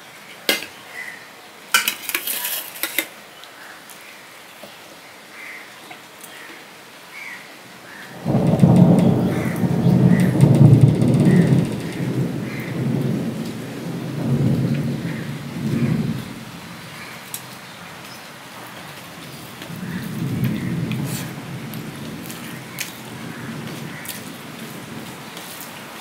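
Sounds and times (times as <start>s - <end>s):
loud low rumble: 8.3s - 13.5s.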